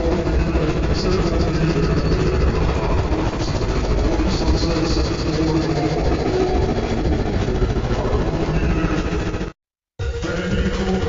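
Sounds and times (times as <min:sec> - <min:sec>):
distorted slowed soundtrack rumble: 0:00.0 - 0:11.0.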